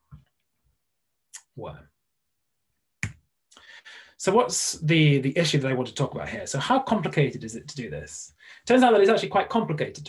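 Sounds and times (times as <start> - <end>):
faint breath: 3.5 - 4.2, 8.3 - 8.7.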